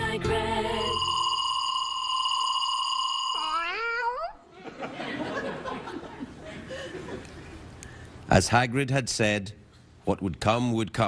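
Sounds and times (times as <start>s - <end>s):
kitten meowing: 3.4s - 4.4s.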